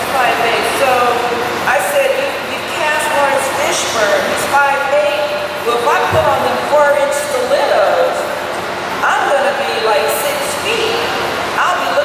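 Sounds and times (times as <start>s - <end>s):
woman talking into a microphone: 0.0s - 8.3s, 9.0s - 12.0s.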